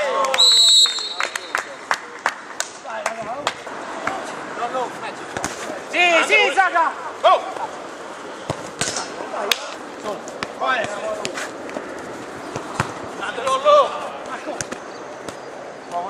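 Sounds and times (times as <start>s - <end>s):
players shouting: 4.0s - 11.4s
ball being kicked: 8.4s - 9.1s, 12.4s - 13.6s.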